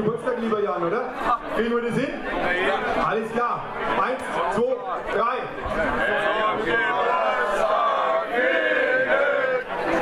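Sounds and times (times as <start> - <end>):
crowd of men singing in unison: 5.7 - 10.0.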